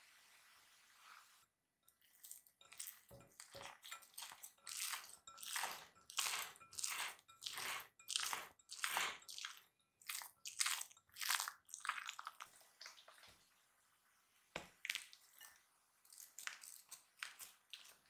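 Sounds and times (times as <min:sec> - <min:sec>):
dough squishing under hand: 0:01.9 - 0:13.5, 0:14.5 - 0:18.0.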